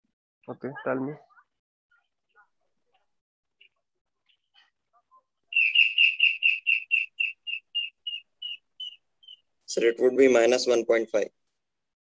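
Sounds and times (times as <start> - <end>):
bird chirping: 5.4 - 9.8.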